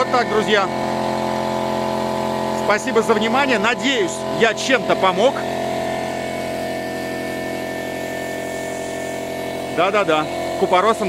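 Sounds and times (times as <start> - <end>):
air compressor running: 0.0 - 11.0
generator running: 0.0 - 11.0.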